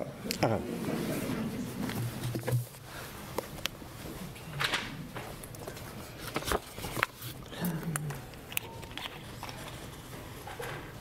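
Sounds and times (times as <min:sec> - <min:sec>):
faint hall room noise: 0:00.0 - 0:11.0.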